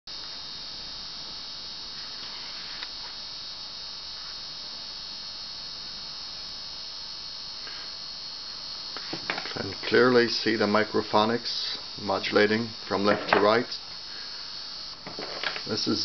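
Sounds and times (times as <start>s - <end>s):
electronic hiss and hum: 0.1s - 16.0s.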